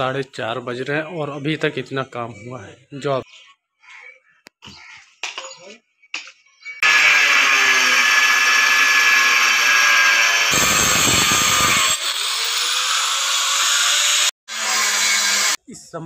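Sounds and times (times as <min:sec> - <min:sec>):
angle grinder cutting tile: 0:06.8 - 0:15.6.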